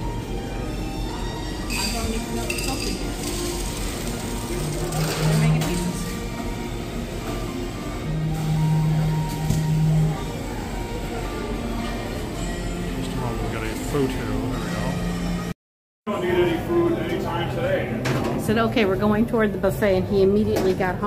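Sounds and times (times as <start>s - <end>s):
music: 0.0s - 21.0s
background chatter: 0.4s - 15.5s, 16.1s - 21.0s
dishes clinking: 1.7s - 3.4s.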